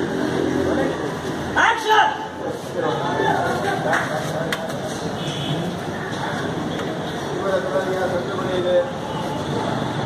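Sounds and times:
voices murmuring faintly: 2.2s - 10.0s.

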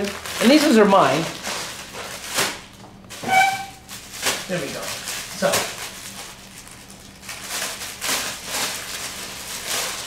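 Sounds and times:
packaging rustling: 0.0s - 2.6s, 3.5s - 10.0s.

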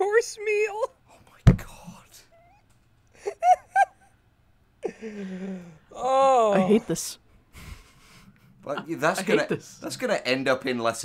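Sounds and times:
loud thump: 1.5s - 1.8s
breathy noise: 4.8s - 6.1s, 7.5s - 8.6s.

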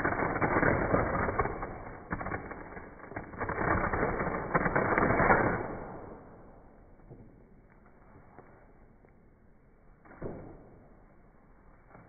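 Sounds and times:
wrapping paper tearing: 0.0s - 6.0s.

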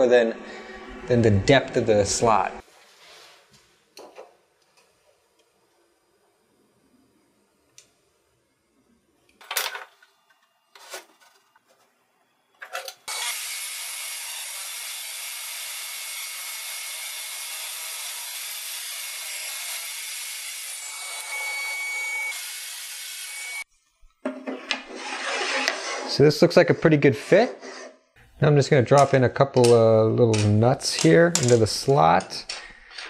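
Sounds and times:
table saw ripping wood: 13.1s - 23.6s, 24.5s - 26.3s.

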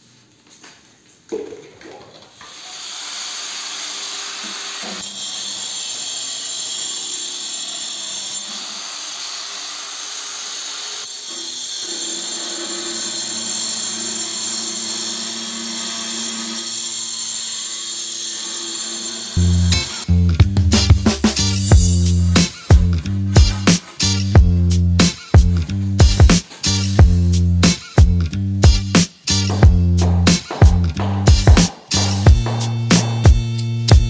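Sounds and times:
angle grinder cutting tile: 2.4s - 20.2s, 21.3s - 27.0s, 29.0s - 30.6s.

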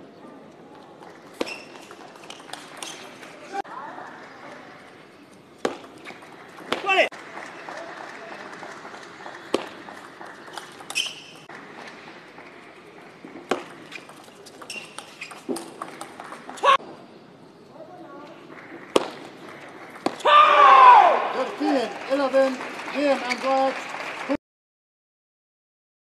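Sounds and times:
shoes squeaking on floor: 1.0s - 3.6s, 9.5s - 12.0s, 12.8s - 16.8s.

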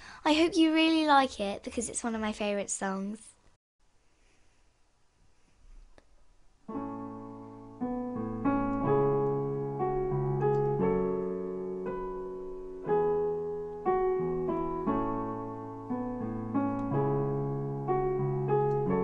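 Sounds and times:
piano chords ringing: 6.7s - 19.0s.

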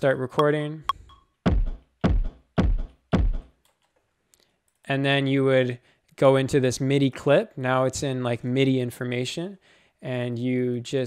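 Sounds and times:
electronic kick drum hits: 1.5s - 3.5s.

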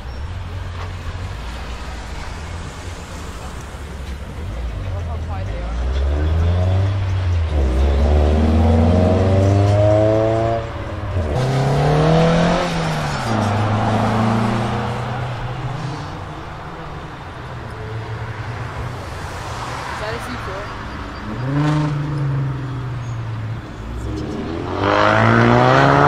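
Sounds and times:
sports car engine accelerating: 4.5s - 16.2s, 21.1s - 26.0s.

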